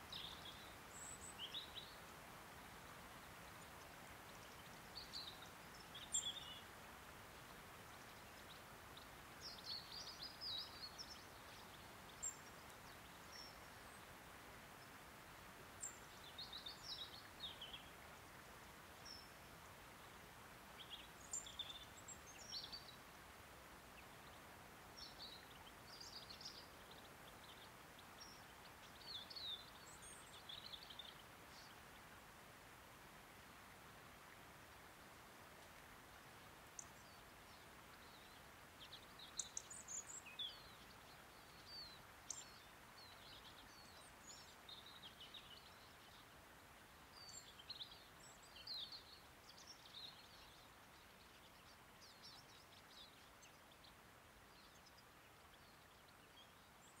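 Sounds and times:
low hiss: 0.0s - 57.0s.

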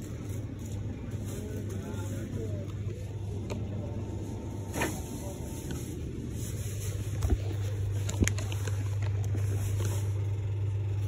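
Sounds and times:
refrigeration hum: 0.0s - 11.0s
faint voices: 0.9s - 9.9s.

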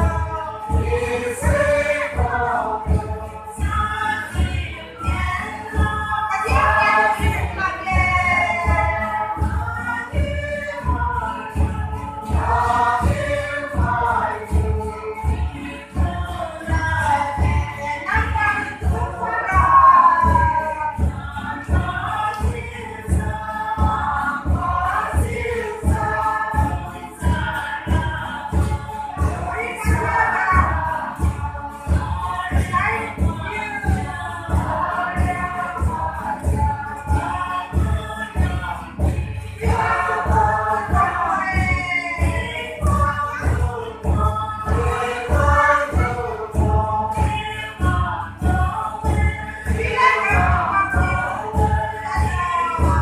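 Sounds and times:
group of voices singing: 0.0s - 53.0s
low thumping beat: 0.0s - 53.0s.

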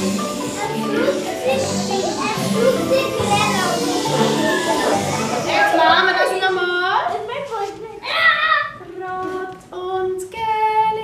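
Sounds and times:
music with long held notes: 0.0s - 6.3s
children's excited voices: 0.0s - 8.8s.

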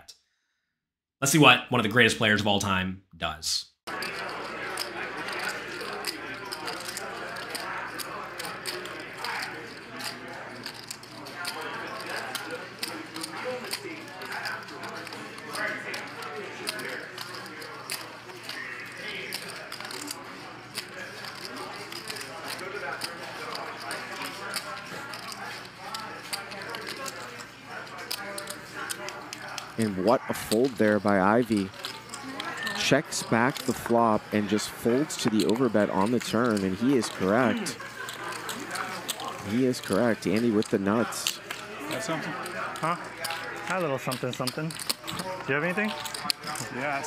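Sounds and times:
low murmur of voices: 3.9s - 47.0s
poker chips clicking: 3.9s - 47.0s.

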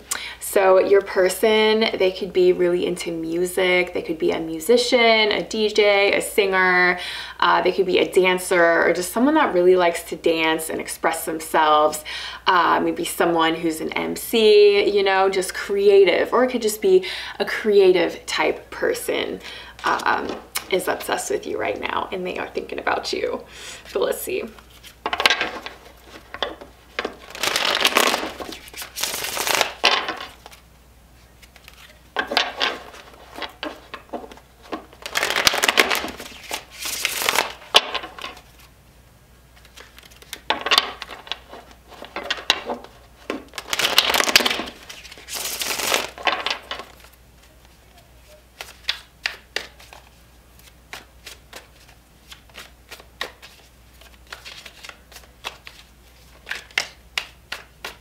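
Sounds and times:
cards being shuffled: 23.8s - 38.7s, 39.5s - 58.0s
cards clicking and tapping: 56.4s - 58.0s.

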